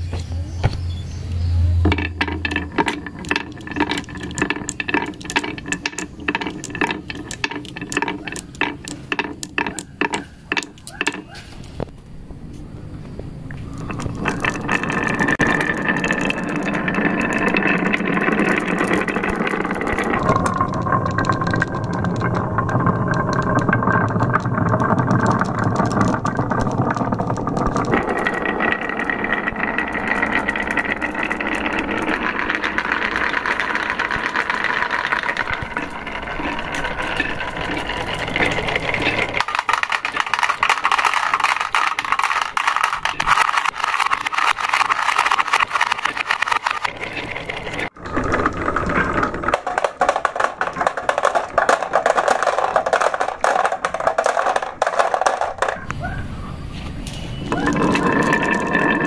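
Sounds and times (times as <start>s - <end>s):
marbles rattling down wooden slope: 1.8s - 11.5s, 13.4s - 55.9s, 57.5s - 59.0s.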